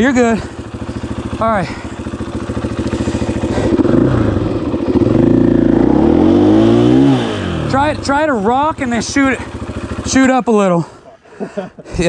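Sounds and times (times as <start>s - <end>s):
dirt bike engine revving: 0.0s - 10.6s.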